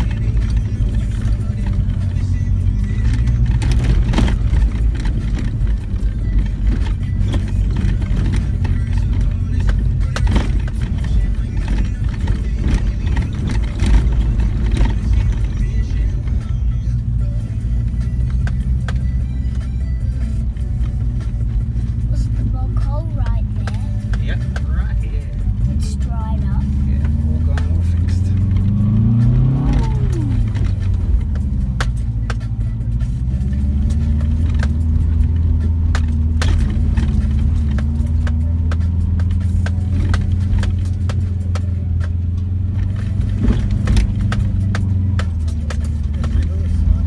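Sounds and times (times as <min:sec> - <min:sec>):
car engine under load: 0:00.0 - 0:47.0
car rattles and knocks: 0:00.0 - 0:47.0.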